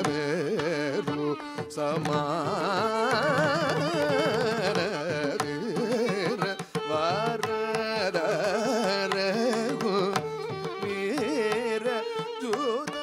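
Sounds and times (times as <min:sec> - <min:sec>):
man singing with ornamented pitch: 0:00.0 - 0:13.0
violin melody: 0:00.0 - 0:13.0.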